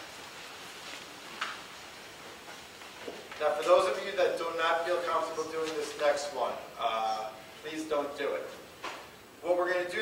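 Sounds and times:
shuffling and rustling: 0.0 - 4.0, 4.8 - 6.4.

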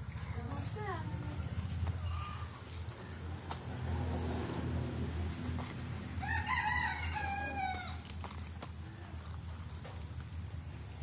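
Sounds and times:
rooster crowing: 6.2 - 8.0.

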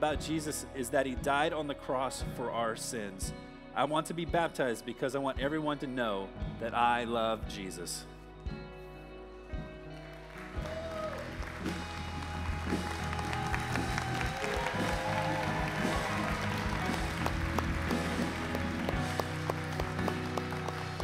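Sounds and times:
band music playing: 0.0 - 21.0
congregation applauding: 9.9 - 21.0.

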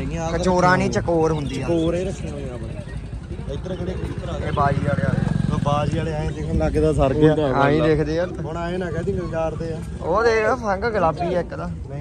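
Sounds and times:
people talking: 0.0 - 12.0
engine running: 0.8 - 7.5.

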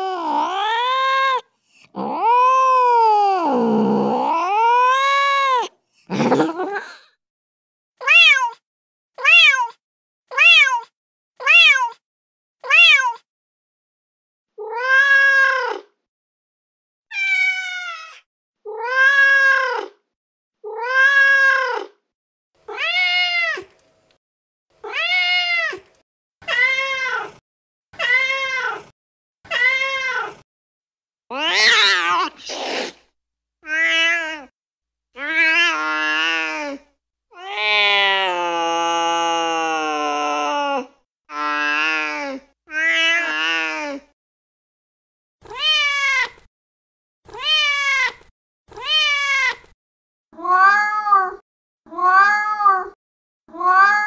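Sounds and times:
cat meowing: 0.0 - 1.4, 2.0 - 6.6, 8.0 - 8.6, 9.2 - 12.0, 12.6 - 13.2, 14.6 - 15.9, 17.1 - 20.0, 20.6 - 22.0, 22.7 - 23.7, 24.8 - 27.4, 28.0 - 28.9, 29.5 - 30.4, 31.3 - 33.0, 33.6 - 34.5, 35.2 - 44.0, 45.4 - 46.4, 47.3 - 49.7, 50.4 - 54.0.

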